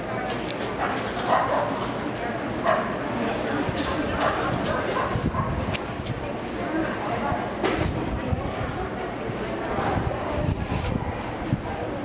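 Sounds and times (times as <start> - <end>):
murmur of voices: 0.0 - 12.0
dog barking: 0.8 - 1.9, 2.6 - 3.0, 4.2 - 5.6.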